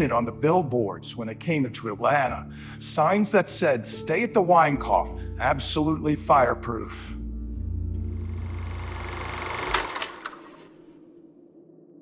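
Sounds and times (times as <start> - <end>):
low drone: 7.0 - 12.0.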